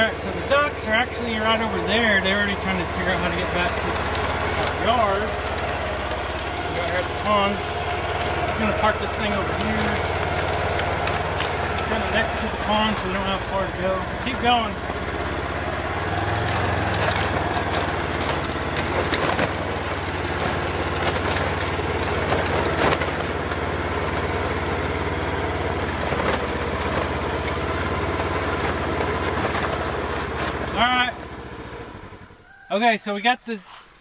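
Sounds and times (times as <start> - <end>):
knocks and rattles: 0.0 - 31.6
utility vehicle engine running: 0.0 - 32.6.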